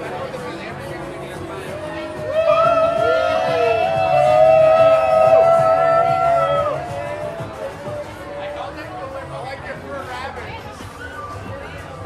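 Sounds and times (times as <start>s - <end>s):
group of people whooping: 2.2s - 7.5s.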